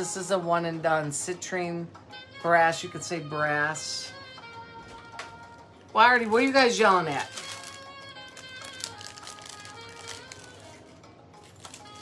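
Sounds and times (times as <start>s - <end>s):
soft background music: 0.0s - 12.0s
plastic bag crinkling: 6.0s - 12.0s.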